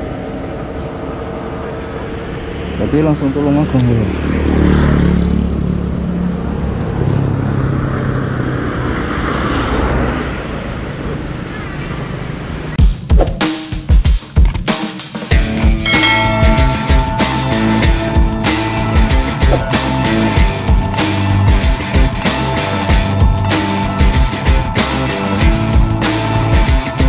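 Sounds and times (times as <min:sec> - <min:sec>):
scooter engine idling: 0:00.0 - 0:02.9
background music with drum beat: 0:12.8 - 0:27.0.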